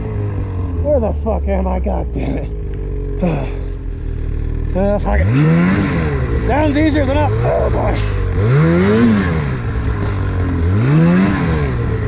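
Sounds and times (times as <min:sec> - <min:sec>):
snowmobile engine idling and revving: 0:00.0 - 0:12.0.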